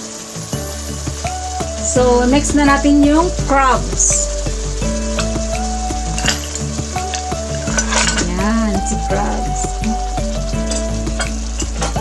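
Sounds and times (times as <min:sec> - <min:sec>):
background music with slow melody: 0:00.0 - 0:12.0
sauce bubbling and sizzling in a wok: 0:00.0 - 0:12.0.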